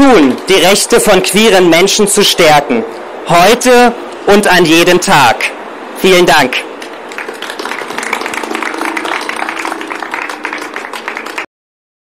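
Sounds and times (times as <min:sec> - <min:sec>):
audience applauding: 0:06.8 - 0:11.5.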